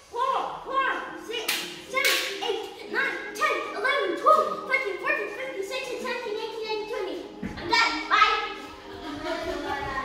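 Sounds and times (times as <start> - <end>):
sharp smacks: 1.5 - 2.4.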